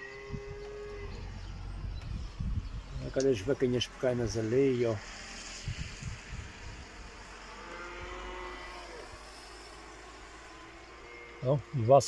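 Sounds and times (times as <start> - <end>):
wind: 0.0 - 12.0
vehicle passing on wet road: 3.9 - 11.4
light rain hiss: 4.9 - 7.8.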